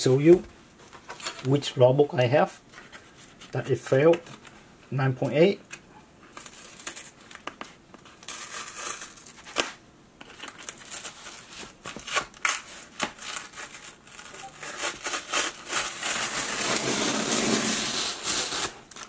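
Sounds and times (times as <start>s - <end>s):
packing material rustling: 6.3s - 19.0s
cardboard tearing and scraping: 10.7s - 19.0s.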